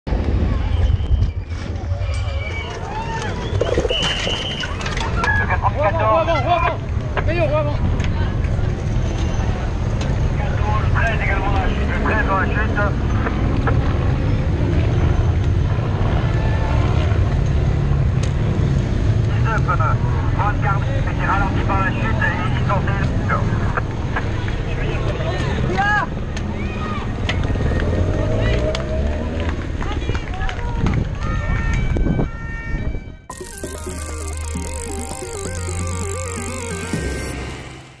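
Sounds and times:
road and wind rumble: 0.1s - 3.4s, 4.6s - 33.2s
electronic music jingle: 33.3s - 38.0s.

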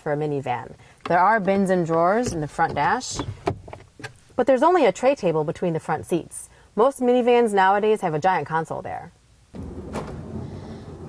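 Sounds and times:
sliding van door rumbling: 9.6s - 11.0s.

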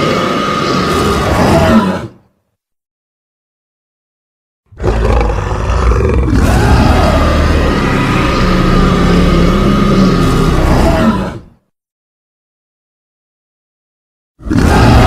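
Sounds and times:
deep monster roar: 0.0s - 2.2s, 4.7s - 11.6s, 14.4s - 15.0s.

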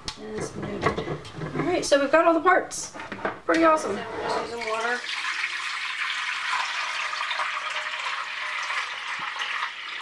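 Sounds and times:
water pouring and splashing: 4.6s - 10.0s.

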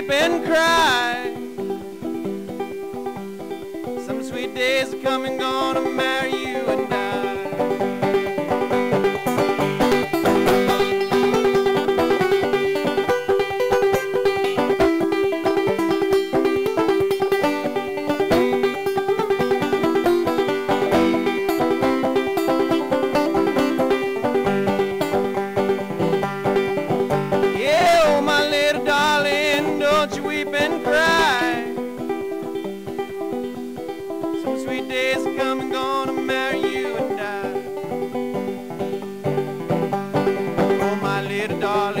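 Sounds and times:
banjo playing fast: 0.0s - 42.0s.

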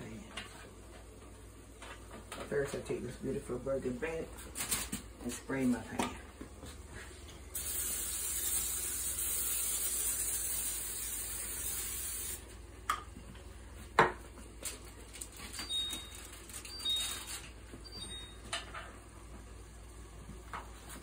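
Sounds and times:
aerosol spray hissing: 7.5s - 12.5s.

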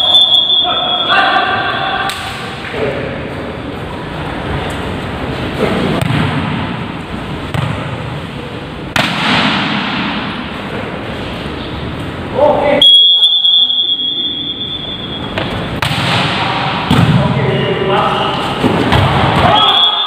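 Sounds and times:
players' voices in echoing hall: 0.0s - 20.0s
volleyball strike: 5.6s - 8.2s, 8.9s - 10.6s, 15.3s - 17.3s, 18.5s - 19.6s
steady high-pitched tone: 12.8s - 15.4s.

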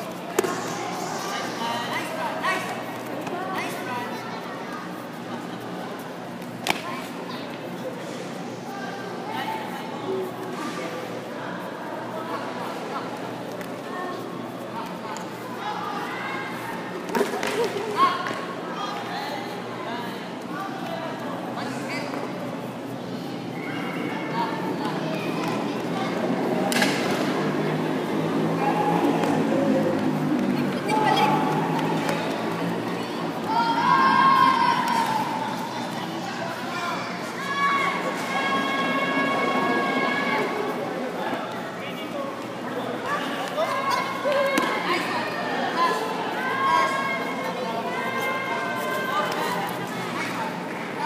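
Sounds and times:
crowd hubbub: 0.0s - 51.0s
spectators and coaches shouting: 28.1s - 41.1s.

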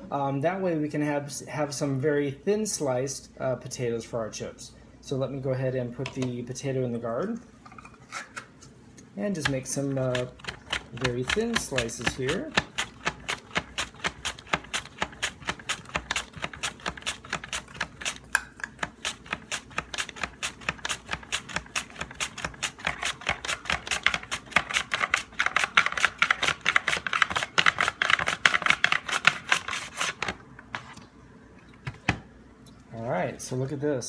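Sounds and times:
potato scraping across slicer blade: 9.4s - 30.3s.

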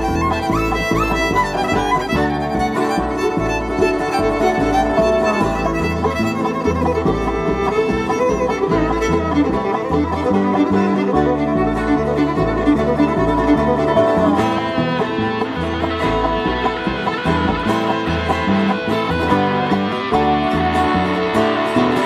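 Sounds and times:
fiddle lead: 0.0s - 22.0s
guitar and banjo: 0.0s - 22.0s.

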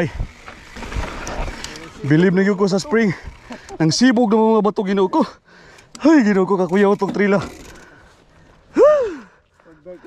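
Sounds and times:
bike rattling: 0.0s - 10.0s
bike tyres on rocky dirt: 0.0s - 10.0s.

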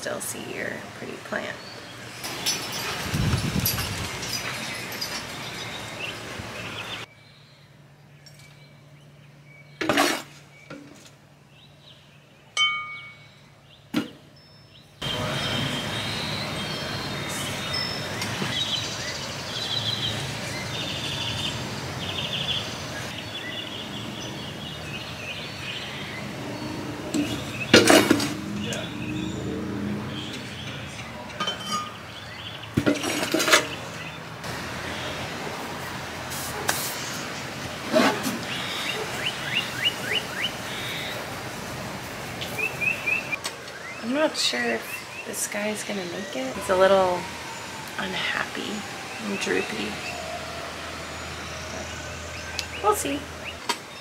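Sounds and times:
steady background noise: 0.0s - 54.0s
pots clinking on glass: 2.2s - 5.5s, 31.3s - 32.0s.

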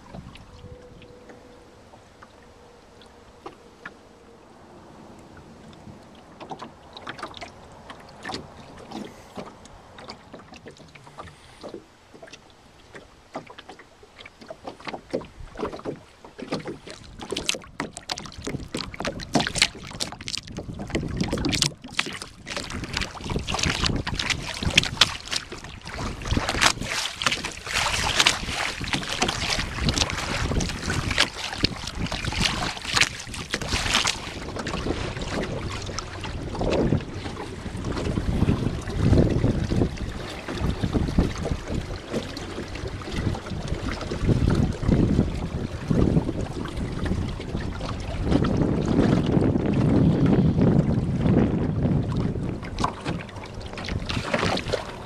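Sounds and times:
wind rumbling on microphone: 0.0s - 11.8s, 15.0s - 55.0s
water splashing along hull: 0.0s - 55.0s.

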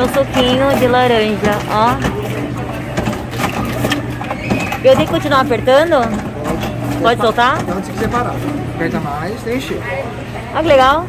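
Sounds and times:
juicer clicks: 0.0s - 9.0s
juicer motor hum: 0.0s - 11.0s.

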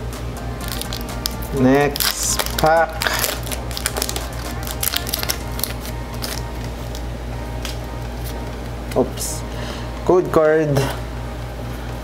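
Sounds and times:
foil wrapper crinkling: 0.6s - 9.0s
wrapper snap: 0.6s - 9.0s.

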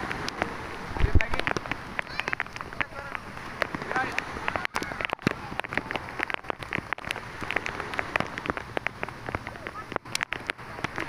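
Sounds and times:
light rain pattering: 0.0s - 11.0s.

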